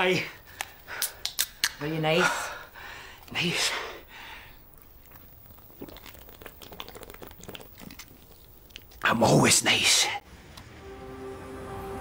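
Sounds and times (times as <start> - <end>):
person gulping from a can: 4.5 - 9.1.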